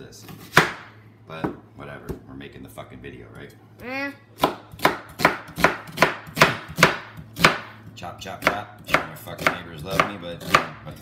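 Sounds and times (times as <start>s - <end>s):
knife chopping on countertop: 0.3s - 2.2s, 4.4s - 11.0s.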